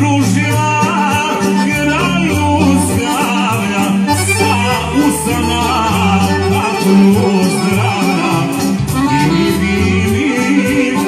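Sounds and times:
accordion: 0:00.0 - 0:11.0
bass line: 0:00.0 - 0:11.0
drums: 0:00.0 - 0:11.0
electric guitar: 0:00.0 - 0:11.0
keyboards: 0:00.0 - 0:11.0
man singing into a microphone: 0:00.0 - 0:11.0.

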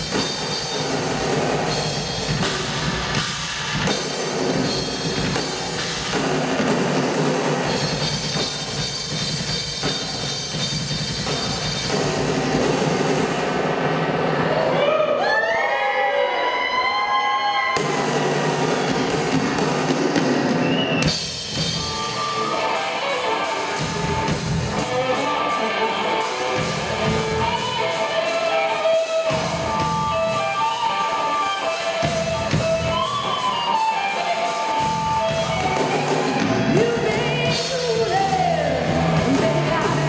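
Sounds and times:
rock drum kit with cymbals: 0:00.0 - 0:14.5, 0:17.7 - 0:40.0.

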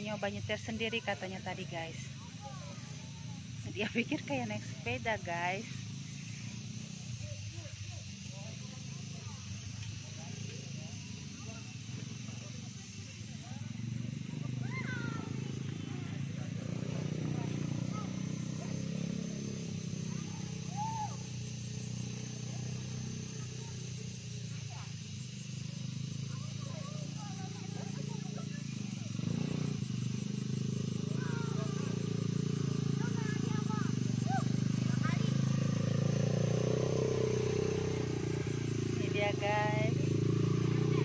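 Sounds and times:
atv engine running: 0:00.0 - 0:41.0.

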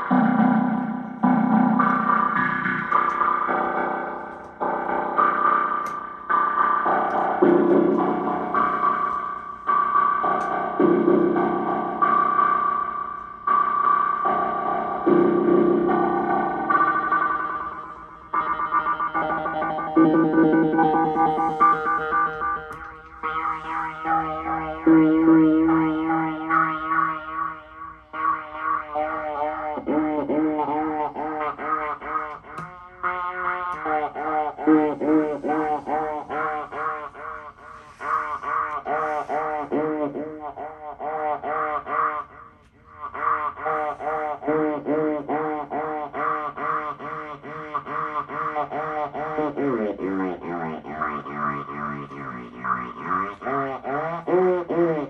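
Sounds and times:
pulsing wobbling synth tone: 0:00.0 - 0:55.0.

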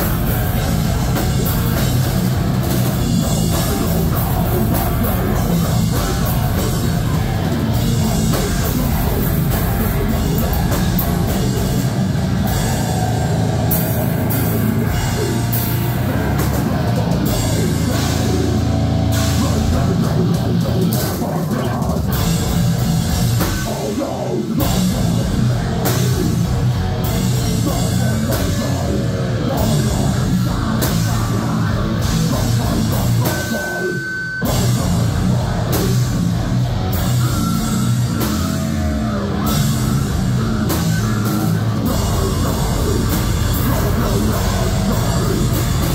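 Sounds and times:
down-tuned guitars: 0:00.0 - 0:45.9
heavy metal band playing live: 0:00.0 - 0:45.9
person growling into microphone: 0:00.0 - 0:45.9.

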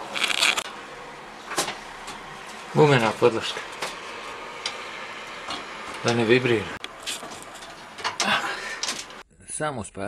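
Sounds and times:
scraping and rustling of unit: 0:00.0 - 0:09.2.

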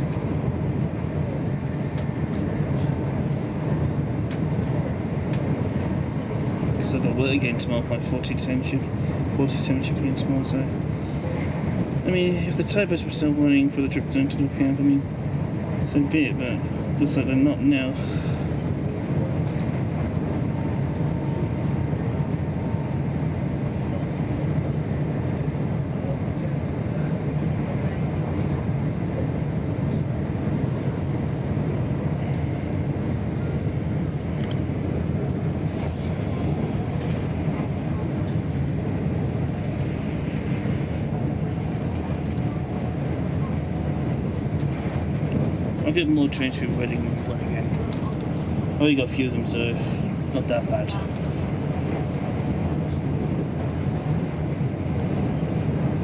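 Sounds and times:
train running at speed: 0:00.0 - 0:56.0.

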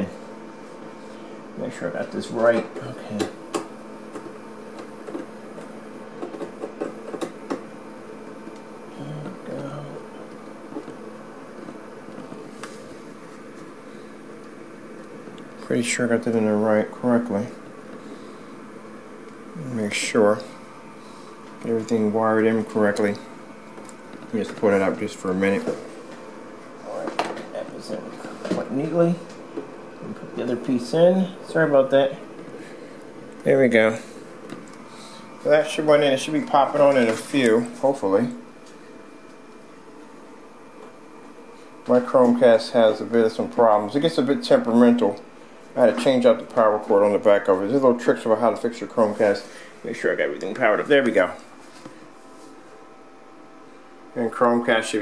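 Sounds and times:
projector cooling fan hum: 0:00.0 - 0:55.0.

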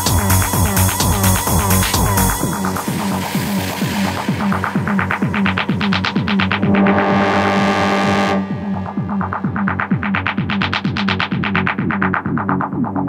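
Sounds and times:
techno kick drum beat: 0:00.0 - 0:13.0
noisy synth swell and chord: 0:02.6 - 0:09.6.

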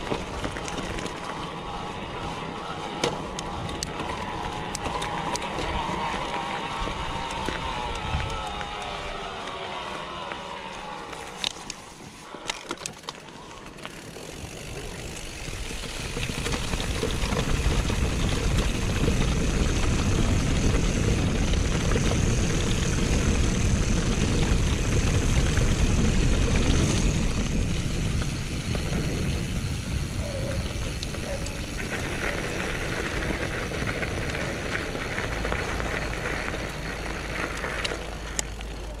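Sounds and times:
wind buffeting microphone: 0:00.0 - 0:09.3, 0:14.4 - 0:38.3
bike tyres rolling over grass: 0:00.0 - 0:39.0.

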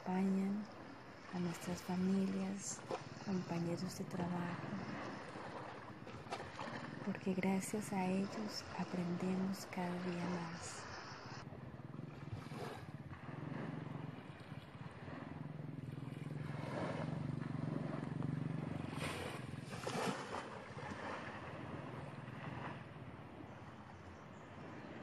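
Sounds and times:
low steady hum: 0:00.0 - 0:25.0
small waves washing on shore: 0:00.0 - 0:25.0.

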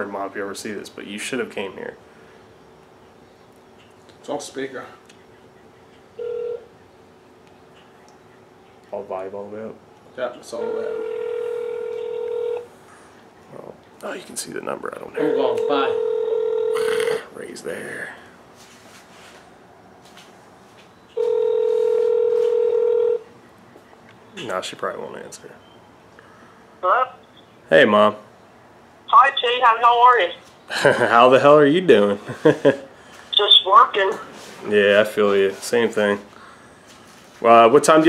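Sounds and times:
faint room noise: 0:00.0 - 0:38.0
phone ringback tone: 0:06.2 - 0:06.7, 0:10.6 - 0:12.7, 0:15.2 - 0:16.9, 0:21.2 - 0:23.3.

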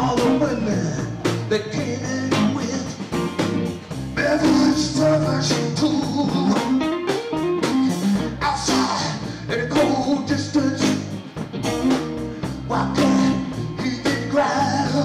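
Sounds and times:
man singing: 0:00.0 - 0:03.2, 0:04.1 - 0:06.8, 0:07.9 - 0:11.2, 0:12.4 - 0:15.0
drums: 0:00.0 - 0:15.0
electric bass: 0:00.0 - 0:15.0
electric guitar: 0:00.0 - 0:15.0.

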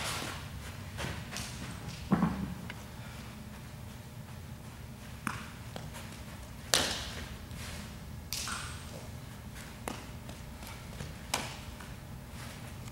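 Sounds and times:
steady low hum: 0:00.0 - 0:12.9.

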